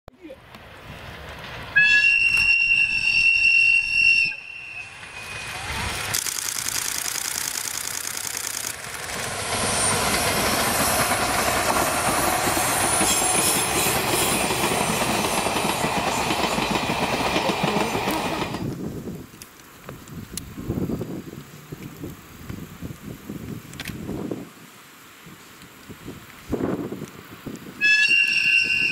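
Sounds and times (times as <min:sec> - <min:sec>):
diesel locomotives passing: 0:00.4 - 0:06.2, 0:08.7 - 0:18.8
train wheels on rails: 0:00.4 - 0:19.1
diesel locomotive horn: 0:01.8 - 0:05.8, 0:27.8 - 0:28.9.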